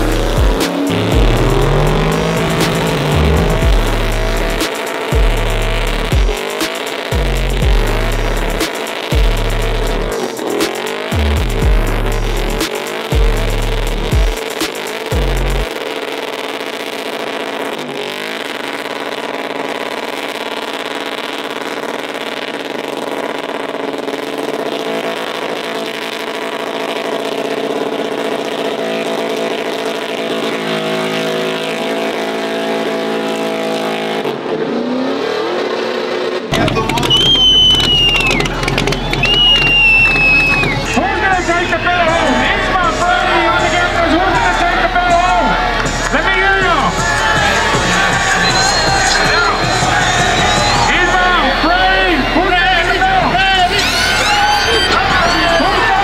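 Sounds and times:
music with heavy bass: 0:00.0 - 0:35.3, 0:36.3 - 0:56.0
truck engine at high revs: 0:00.0 - 0:56.0
tyres squealing: 0:36.5 - 0:44.6, 0:47.0 - 0:56.0.

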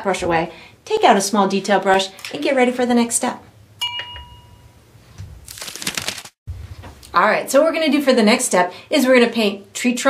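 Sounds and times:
crinkling rustle: 0:05.4 - 0:06.4.

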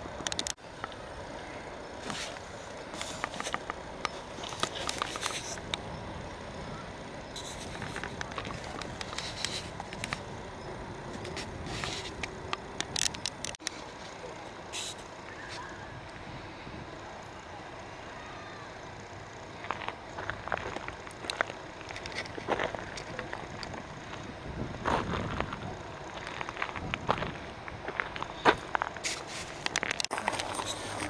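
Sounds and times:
steady background hum: 0:00.0 - 0:31.0
sharp clicks and crackles: 0:00.2 - 0:01.0, 0:02.0 - 0:05.9, 0:07.3 - 0:10.3, 0:11.1 - 0:13.9, 0:19.6 - 0:24.3, 0:28.1 - 0:31.0
indistinct voices: 0:29.9 - 0:31.0.

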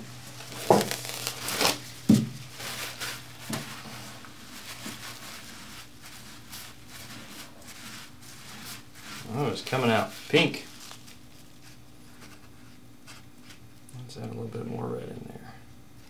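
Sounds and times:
paper towel rubbing on leather: 0:00.0 - 0:01.9, 0:02.5 - 0:13.2.

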